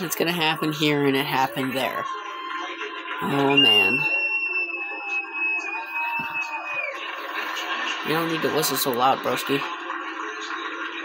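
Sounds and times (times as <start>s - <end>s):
crowd noise from tv: 0.0s - 11.0s
long high whistle: 2.4s - 7.5s.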